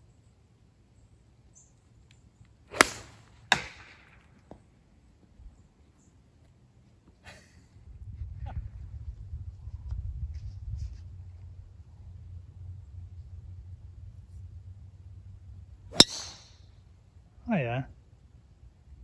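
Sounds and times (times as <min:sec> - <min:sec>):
golf club striking ball: 0:02.7 - 0:04.0, 0:15.9 - 0:16.6.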